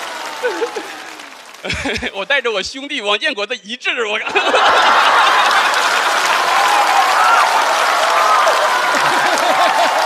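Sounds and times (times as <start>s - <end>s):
voices over clapping: 0.0s - 2.0s, 5.4s - 10.0s
audience applauding: 0.0s - 2.6s, 4.5s - 10.0s.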